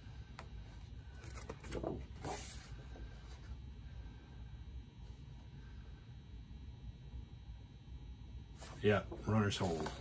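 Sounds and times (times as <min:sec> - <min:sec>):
paper rustling: 0:01.1 - 0:02.8.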